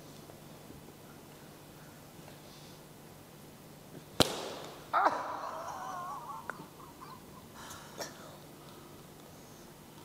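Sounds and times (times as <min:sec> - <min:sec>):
sharp hand slap: 0:04.2 - 0:04.9.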